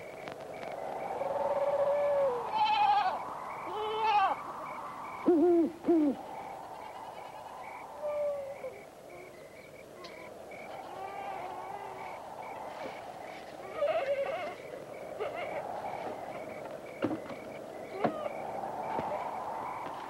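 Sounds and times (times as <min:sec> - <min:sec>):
low hooting calls: 0:00.0 - 0:20.0
goat bleating: 0:02.5 - 0:04.4, 0:13.6 - 0:14.6.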